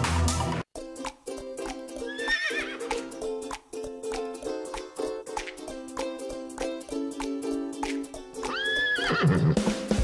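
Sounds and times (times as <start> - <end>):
plucked-string music: 0.8 - 10.0
horse whinny: 8.5 - 9.6.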